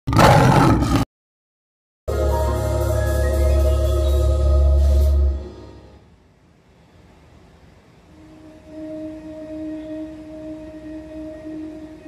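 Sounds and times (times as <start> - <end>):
lion roaring: 0.1 - 1.0.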